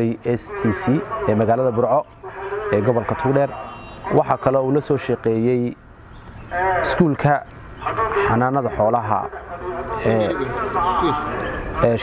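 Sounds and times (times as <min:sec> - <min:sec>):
man speaking: 0:00.0 - 0:05.8, 0:06.5 - 0:12.0.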